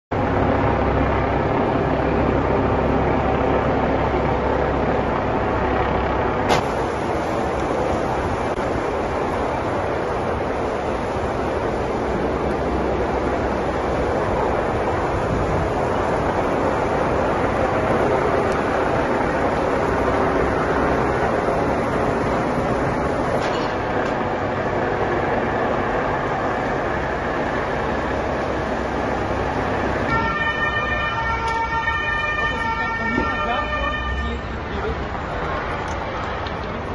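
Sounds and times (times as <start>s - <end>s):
fire burning with rushing noise: 0.1s - 36.9s
fire snapping: 5.8s - 30.1s.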